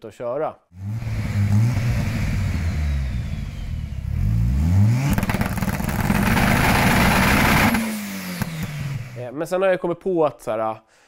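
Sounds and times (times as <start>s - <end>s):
car engine revving: 0.8s - 9.2s.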